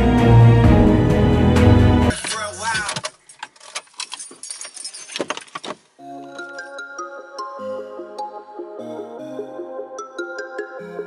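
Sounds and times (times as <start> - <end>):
car keys jangling: 2.1 - 5.9.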